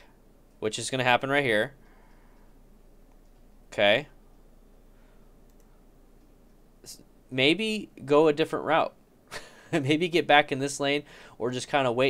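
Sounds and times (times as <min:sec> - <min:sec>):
faint ticks: 0:01.8 - 0:03.6, 0:04.3 - 0:07.0
computer mouse click: 0:05.4 - 0:06.6.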